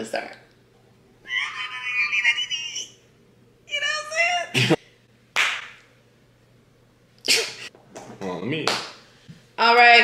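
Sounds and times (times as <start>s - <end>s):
sharp hand clap: 5.4s - 5.9s, 8.6s - 9.0s.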